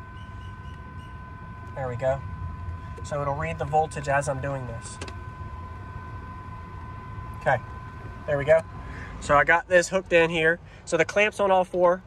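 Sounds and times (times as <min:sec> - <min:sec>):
high-pitched whine: 0:00.0 - 0:12.0
vehicle engine idling: 0:00.0 - 0:12.0.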